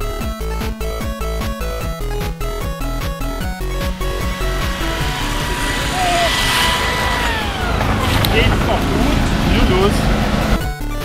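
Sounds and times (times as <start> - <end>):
street noise: 3.0 - 10.6
hedge trimmer motor whining: 3.6 - 8.5.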